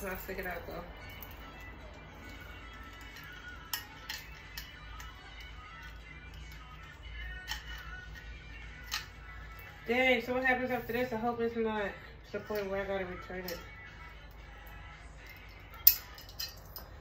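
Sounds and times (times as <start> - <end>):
faint background music: 0.0 - 17.0.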